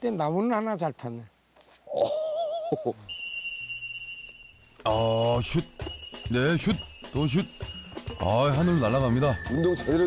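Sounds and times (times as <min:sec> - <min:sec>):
warbling whistle-like tone: 0:03.1 - 0:10.0.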